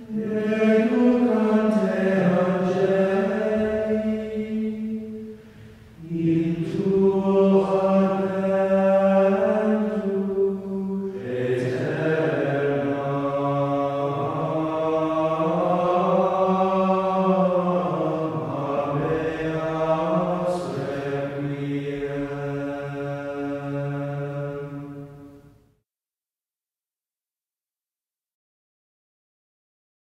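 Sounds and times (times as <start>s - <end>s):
voices chanting long notes: 0.0s - 25.5s.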